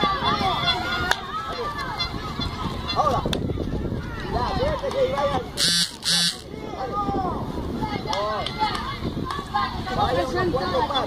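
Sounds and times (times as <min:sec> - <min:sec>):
children calling and chattering: 0:00.0 - 0:11.0.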